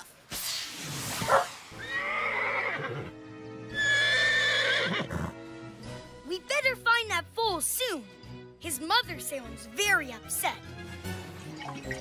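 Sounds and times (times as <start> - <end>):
light background music: 1.2 - 12.0
horse whinnying: 1.8 - 5.4.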